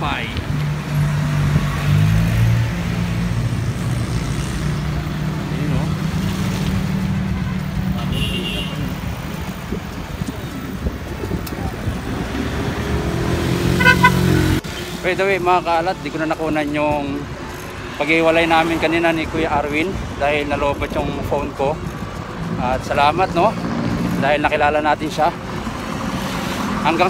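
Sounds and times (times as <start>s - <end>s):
car horn toots: 7.4s - 8.9s, 13.7s - 14.5s.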